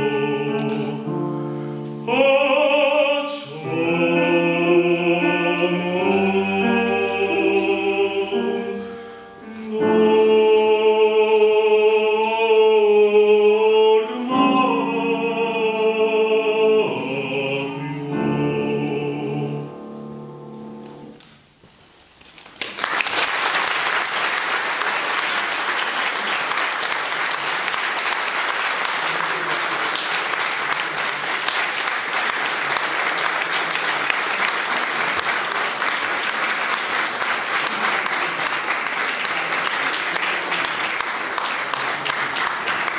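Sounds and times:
audience applauding: 0:22.4 - 0:42.9.

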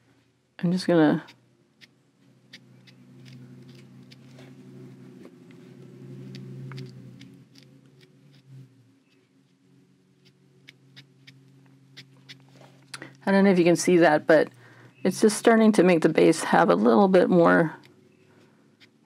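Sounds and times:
low steady hum: 0:00.0 - 0:19.0
ink applicator dabbing on paper: 0:02.5 - 0:05.0, 0:05.6 - 0:09.6, 0:18.8 - 0:19.0.

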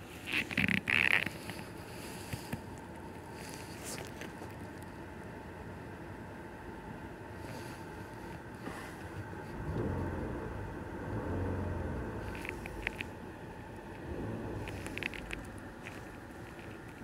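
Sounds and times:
car engine idling and revving: 0:00.0 - 0:17.0.

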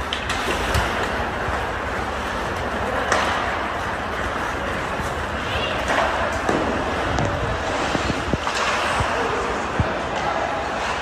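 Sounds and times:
rink background noise: 0:00.0 - 0:11.0
skate blades scraping ice: 0:00.0 - 0:11.0.

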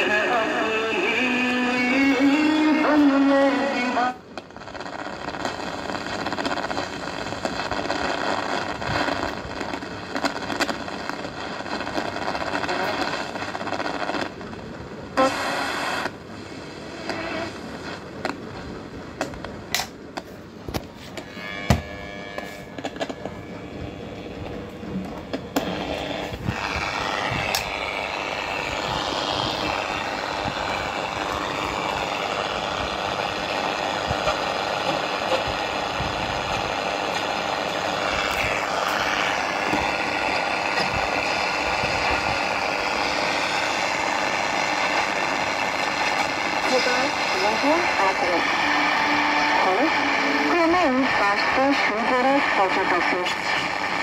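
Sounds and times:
radio static hiss: 0:00.0 - 0:54.0
sliding radio whistles: 0:15.2 - 0:16.2, 0:16.8 - 0:18.0, 0:21.2 - 0:24.5, 0:25.3 - 0:54.0.

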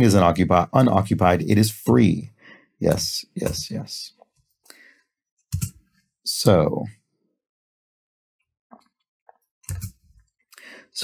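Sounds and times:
keyboard typing clicks: 0:05.5 - 0:05.8, 0:09.6 - 0:10.0.

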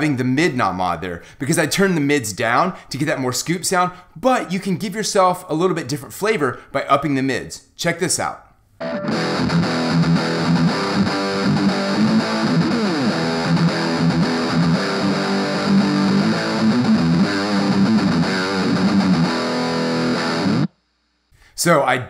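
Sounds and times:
distorted electric guitar riff: 0:08.8 - 0:20.7.

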